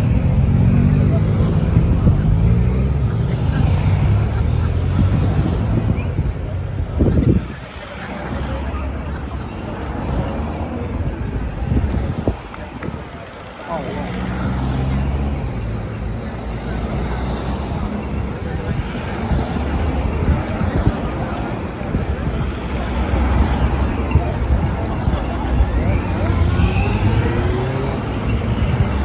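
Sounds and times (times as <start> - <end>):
cars driving past: 0.0 - 29.0
roadside crowd voices: 0.0 - 29.0.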